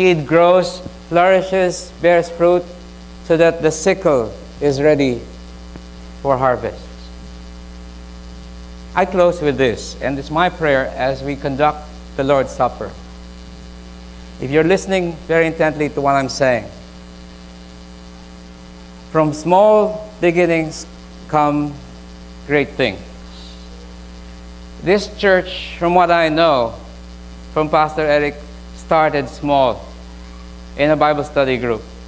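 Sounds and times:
man talking: 0.0s - 5.3s, 6.2s - 7.1s, 8.9s - 13.0s, 14.4s - 16.8s, 19.1s - 21.8s, 22.4s - 23.1s, 24.8s - 27.0s, 27.6s - 30.0s, 30.8s - 31.9s
electrical mains hum: 0.0s - 32.0s
faint hiss: 0.0s - 32.0s.

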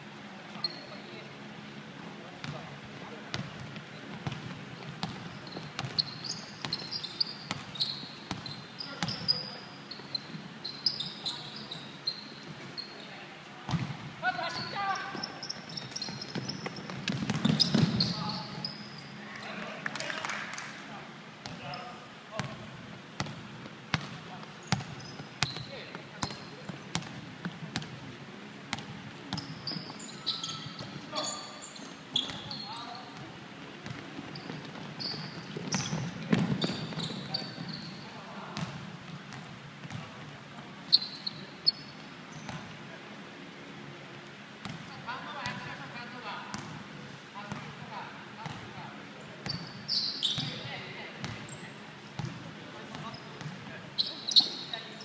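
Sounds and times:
voices calling in echoing hall: 0.0s - 55.0s
basketball bouncing on wooden floor: 33.2s - 37.3s.

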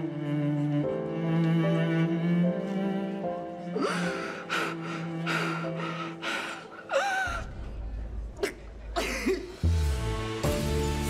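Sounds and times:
slow bowed-string music: 0.0s - 7.4s, 9.6s - 11.0s
woman sobbing: 3.8s - 7.5s.

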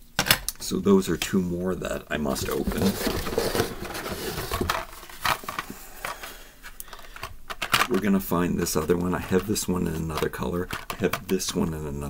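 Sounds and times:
cardboard and plastic rustling: 2.2s - 11.5s.

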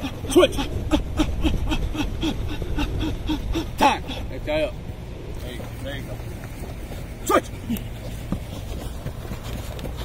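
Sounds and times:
wind rumbling on microphone: 0.0s - 7.2s.

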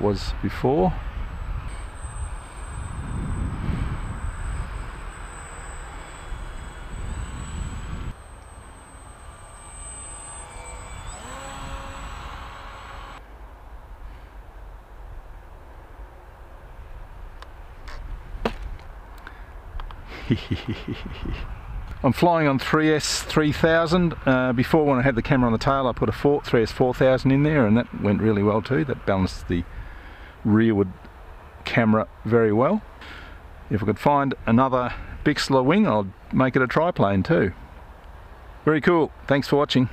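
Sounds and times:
wind rumble on microphone: 0.0s - 8.2s, 20.7s - 22.3s
model plane motor whining: 0.0s - 13.2s.

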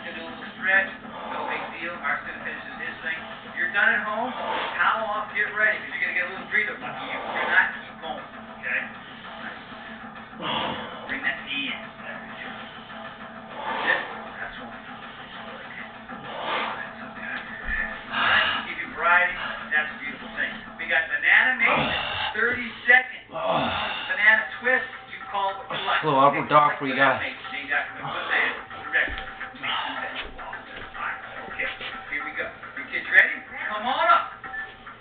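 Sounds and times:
background music: 0.0s - 35.0s.

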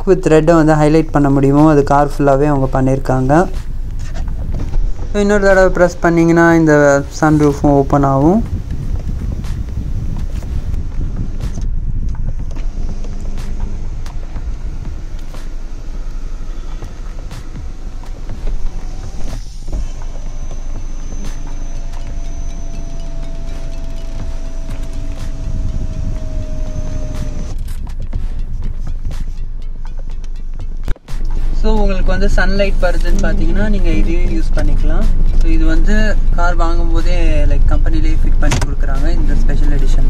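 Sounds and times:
road and engine rumble in car: 0.4s - 40.0s
faint falling whine: 0.8s - 27.6s, 31.6s - 40.0s.

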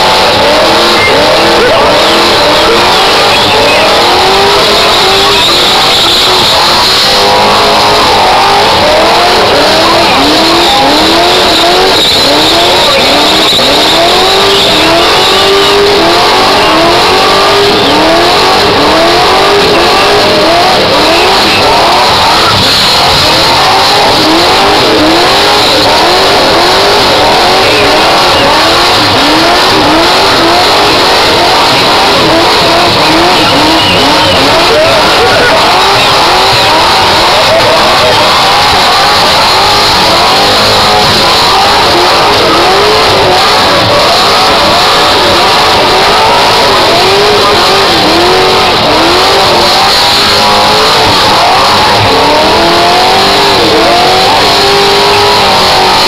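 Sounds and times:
car engine revving high: 0.0s - 56.0s.

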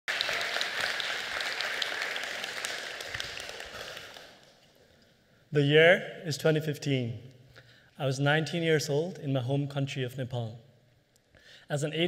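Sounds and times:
audience applause: 0.0s - 4.6s.

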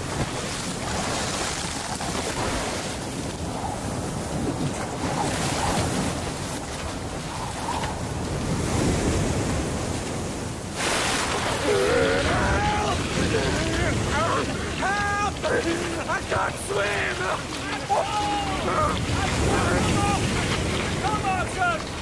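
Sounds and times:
heavy surf: 0.0s - 22.0s
surf crash: 0.0s - 22.0s
wind: 0.0s - 22.0s.

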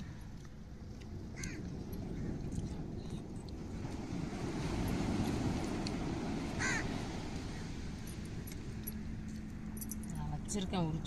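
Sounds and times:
crow cawing: 1.4s - 1.6s, 6.6s - 6.9s.

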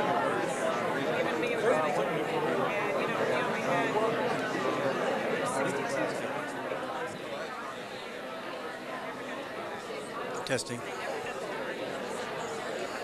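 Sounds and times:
babble of overlapping conversation: 0.0s - 13.0s.

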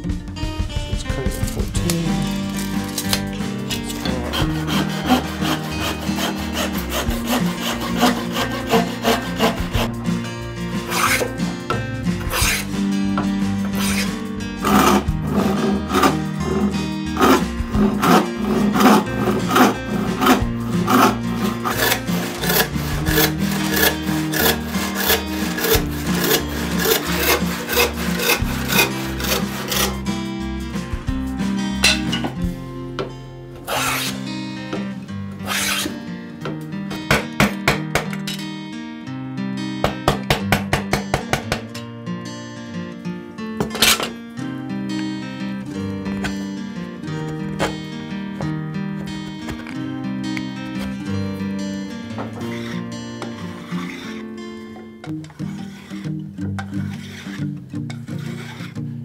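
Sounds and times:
knocks and taps: 0.0s - 2.6s, 36.5s - 38.2s, 39.8s - 41.8s
background music: 0.0s - 59.0s
hand saw cutting wood: 1.4s - 10.0s, 10.7s - 12.8s, 13.6s - 30.3s, 33.6s - 34.3s, 35.4s - 36.0s, 43.6s - 44.2s, 52.2s - 58.8s.

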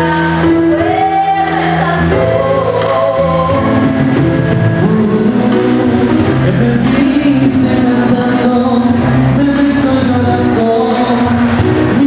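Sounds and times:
girl singing into microphone: 0.0s - 4.0s
electronic keyboard chords: 0.0s - 12.0s.

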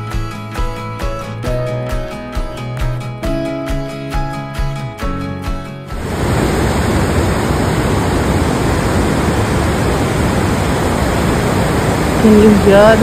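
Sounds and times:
river rapids rushing over boulders: 6.0s - 13.0s.

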